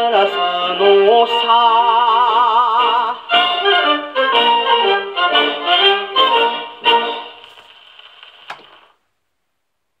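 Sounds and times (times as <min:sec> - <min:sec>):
gramophone record music: 0:00.0 - 0:09.1.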